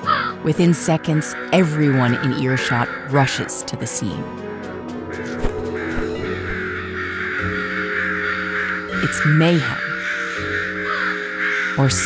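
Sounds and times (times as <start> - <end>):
crows cawing: 0.0 - 0.4, 1.1 - 3.8, 5.2 - 12.0
background music: 0.0 - 12.0.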